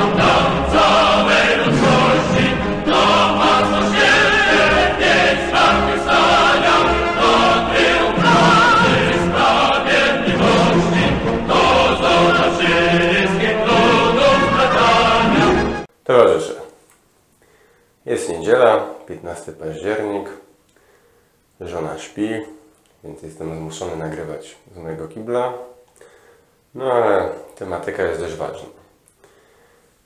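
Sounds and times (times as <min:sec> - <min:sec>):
choir singing held notes: 0:00.0 - 0:15.9.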